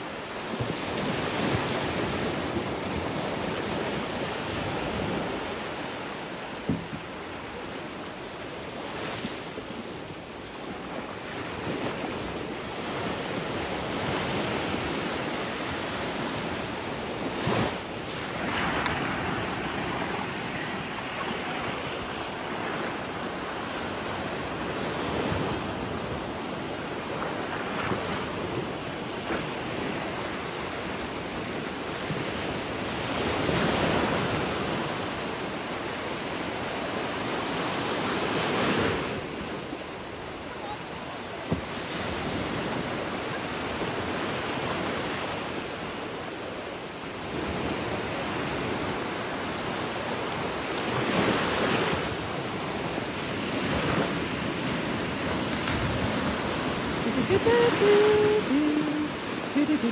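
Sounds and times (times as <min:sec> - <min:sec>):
waves breaking on sandy shore: 0:00.0 - 0:59.9.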